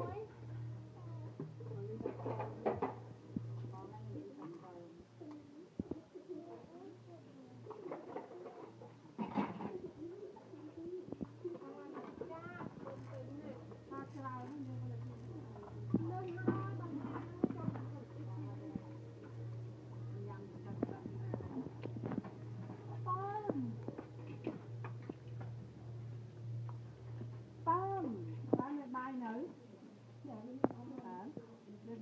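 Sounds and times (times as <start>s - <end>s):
dove cooing: 7.6s - 19.0s.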